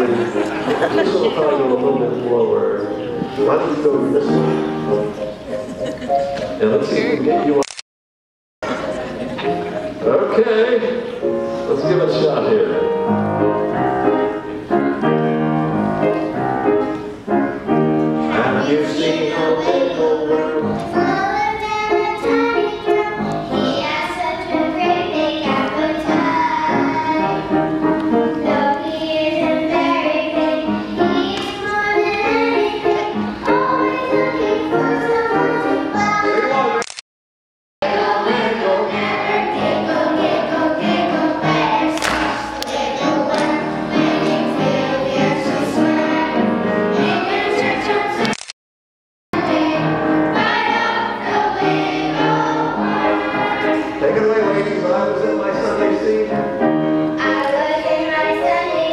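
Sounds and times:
backing music: 0:00.0 - 0:07.6, 0:08.6 - 0:36.8, 0:37.8 - 0:48.3, 0:49.4 - 0:58.9
children's choir singing: 0:00.0 - 0:07.6, 0:08.6 - 0:36.8, 0:37.8 - 0:48.3, 0:49.4 - 0:58.9
girls singing into microphones: 0:18.4 - 0:36.7, 0:37.8 - 0:48.3, 0:49.4 - 0:54.7, 0:57.2 - 0:58.9.

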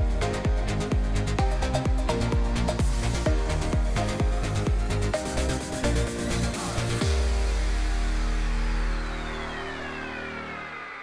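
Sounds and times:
electronic music: 0:00.0 - 0:11.0
high tone gliding downward: 0:07.1 - 0:11.0.

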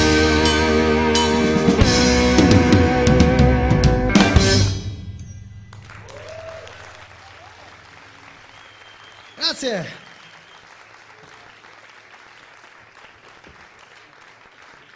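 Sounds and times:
audience applause: 0:05.8 - 0:14.9.

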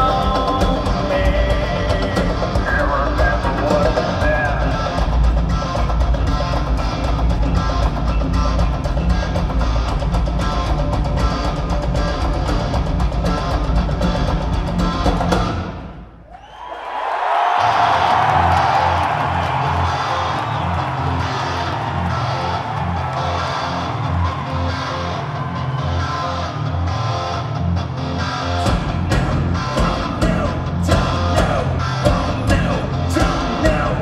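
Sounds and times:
pulsing bass notes: 0:00.0 - 0:15.9, 0:26.4 - 0:34.0
heavy rock band playing live: 0:00.0 - 0:16.0, 0:17.8 - 0:34.0.

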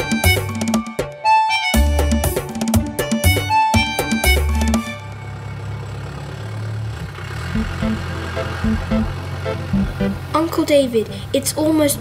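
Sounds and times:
upbeat music with drums: 0:00.0 - 0:04.9, 0:07.6 - 0:10.3.

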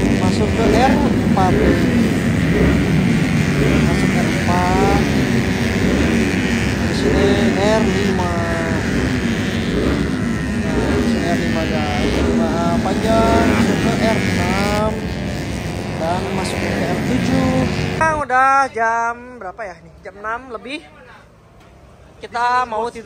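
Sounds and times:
racing scooter engines accelerating: 0:00.0 - 0:18.4.

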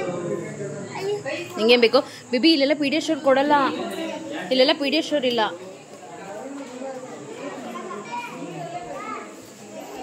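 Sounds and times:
adults and children chattering: 0:00.0 - 0:10.0.

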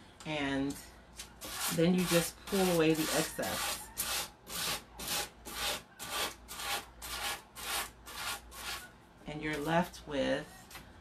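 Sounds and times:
sanding block rubbing wood: 0:01.4 - 0:08.8.

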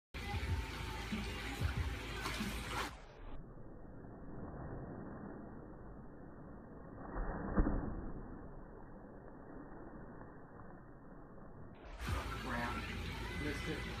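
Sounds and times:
pool water sounds: 0:00.2 - 0:03.5, 0:11.9 - 0:14.0.

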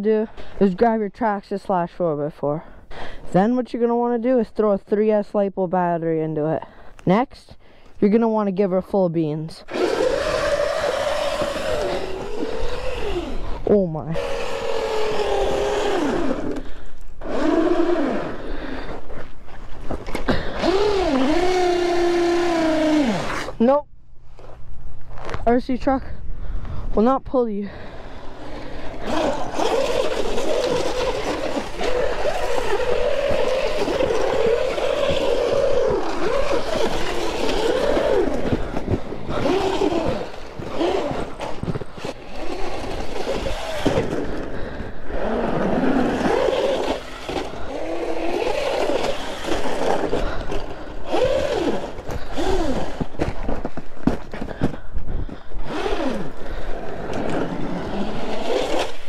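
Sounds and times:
electric toy truck motor whine: 0:09.7 - 0:18.6, 0:20.3 - 0:23.6, 0:28.2 - 0:53.2, 0:55.6 - 0:59.0.

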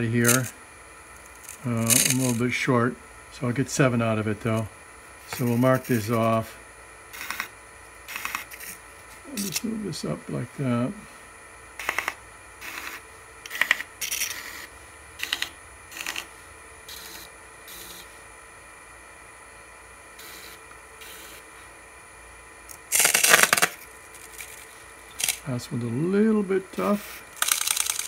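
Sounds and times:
pencil scratching spinning wood: 0:07.2 - 0:07.5, 0:08.1 - 0:08.8, 0:11.8 - 0:16.3, 0:16.9 - 0:18.1, 0:26.8 - 0:28.0.

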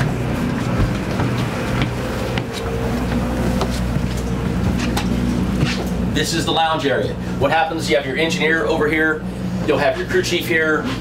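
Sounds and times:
footsteps on steps: 0:00.0 - 0:06.0
low machine hum: 0:00.0 - 0:11.0.

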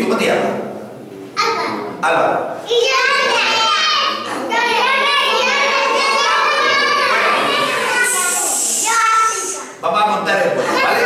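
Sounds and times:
children talking and calling out: 0:01.4 - 0:09.8, 0:10.5 - 0:11.0
adult shushing: 0:07.9 - 0:09.8.

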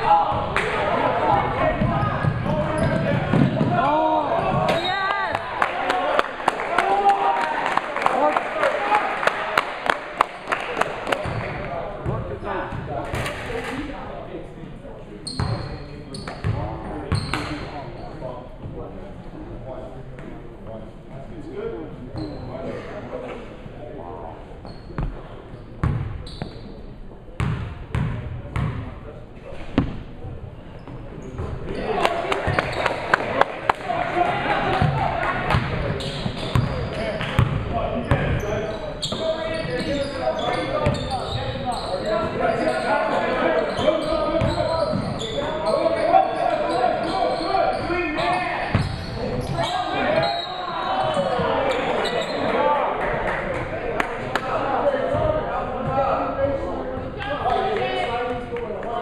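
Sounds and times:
players and spectators calling: 0:00.0 - 0:11.7, 0:31.7 - 0:58.4.

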